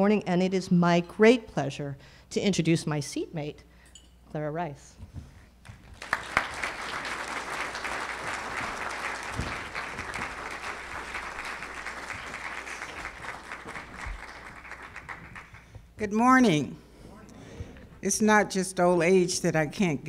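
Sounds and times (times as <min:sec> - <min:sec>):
audience applauding: 0:05.7 - 0:15.7.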